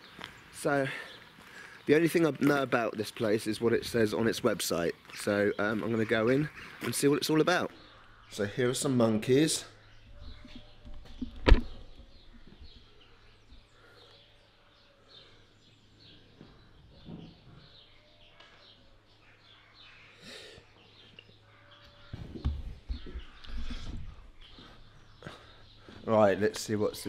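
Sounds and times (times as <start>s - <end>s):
faint high chirping calls: 4.7s - 26.4s.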